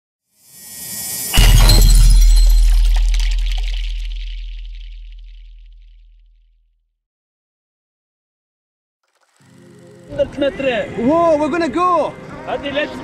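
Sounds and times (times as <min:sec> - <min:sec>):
deep bass hit: 0:01.3 - 0:06.1.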